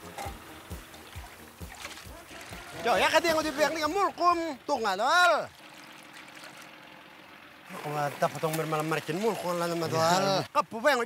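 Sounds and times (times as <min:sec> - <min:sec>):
speech: 0:02.1 - 0:05.5, 0:07.7 - 0:11.0.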